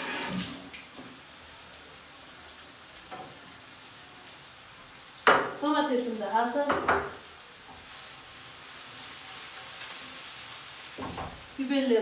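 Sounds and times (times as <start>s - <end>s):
peppers sizzling in oil: 0.0s - 12.0s.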